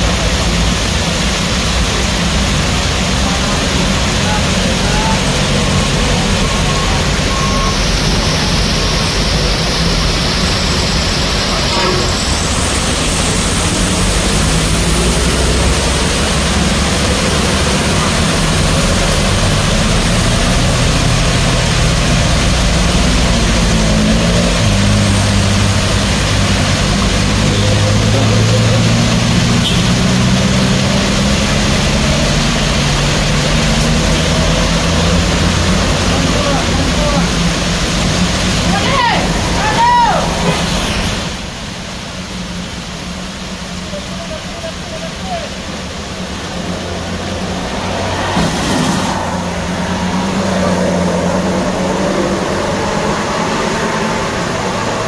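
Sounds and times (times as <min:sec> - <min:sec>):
deep engine hum: 0:00.0 - 0:38.6
heavy rain on wet road: 0:00.0 - 0:55.0
vehicle engines passing: 0:00.0 - 0:55.0.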